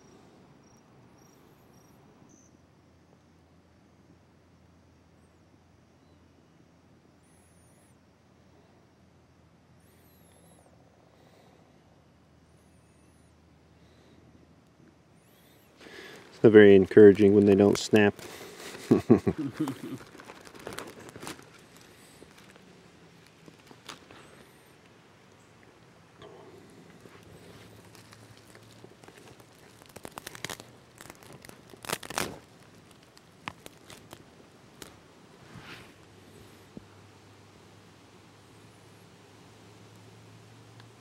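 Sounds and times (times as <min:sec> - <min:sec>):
fire cracking: 0:15.4 - 0:25.0, 0:25.6 - 0:36.7
dry grass and sticks crunching: 0:15.8 - 0:24.6, 0:26.7 - 0:35.1.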